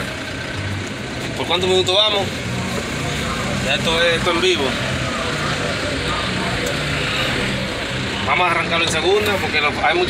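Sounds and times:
street noise: 0.0s - 10.0s
truck engine idling: 0.0s - 10.0s.

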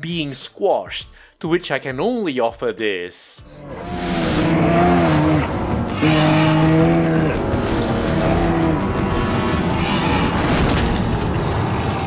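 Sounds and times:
low horn-like tones: 3.5s - 10.5s.

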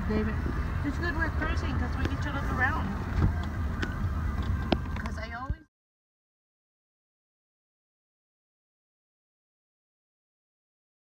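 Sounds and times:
road and engine rumble in cab: 0.0s - 5.7s
voices: 0.0s - 5.7s.

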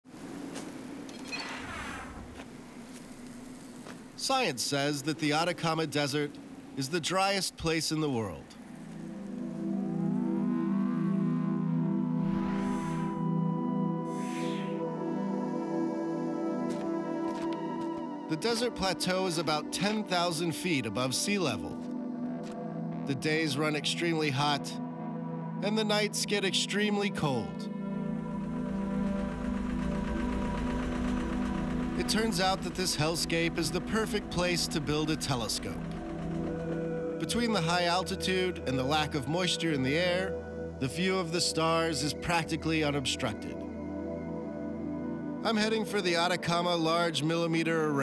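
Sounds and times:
ambient music with held tones: 2.6s - 48.0s
low drone chord: 8.6s - 18.4s, 27.6s - 47.2s
low pulsing rumble: 27.7s - 41.9s.

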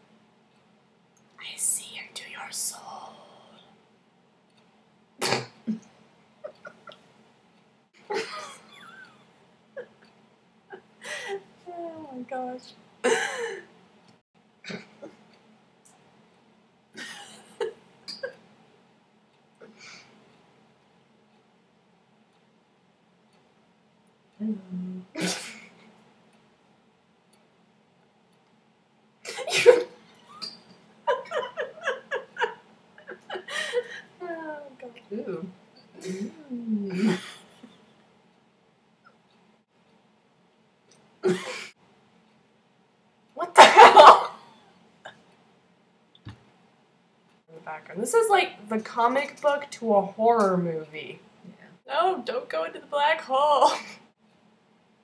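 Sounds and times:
woman whispering: 1.4s - 3.7s.

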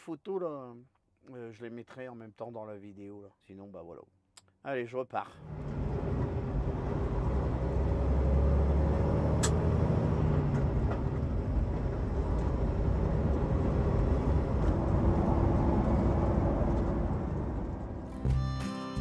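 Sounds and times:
road noise: 5.4s - 18.3s
truck engine rumble: 5.4s - 18.6s
sharp click: 9.4s - 9.6s.

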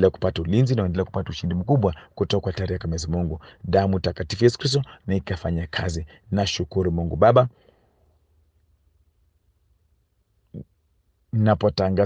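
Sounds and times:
man speaking: 0.0s - 7.5s, 11.3s - 12.0s.

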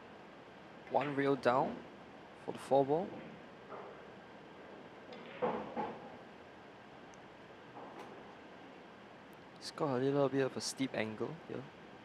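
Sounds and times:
pool balls knocking: 5.2s - 6.2s.

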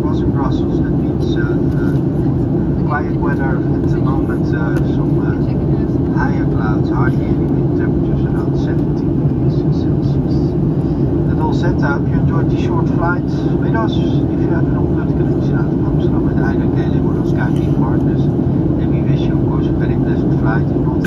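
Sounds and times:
faint passenger talk: 0.0s - 21.0s
jet engines droning: 0.0s - 21.0s.

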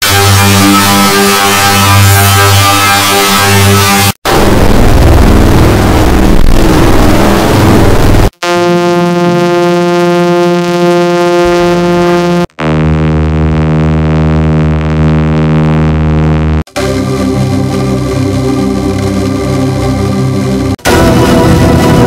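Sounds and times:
harsh distorted noise: 0.0s - 22.0s
held buzzy tones: 8.3s - 16.7s.

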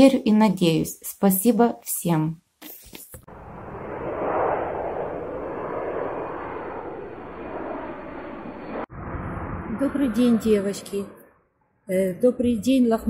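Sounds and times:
steady rushing noise: 3.3s - 11.0s.

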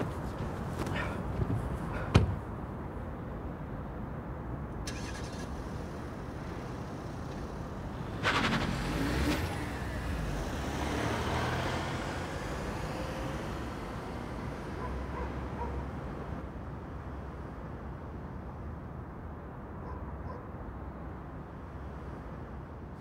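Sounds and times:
car driving past: 4.9s - 15.2s.

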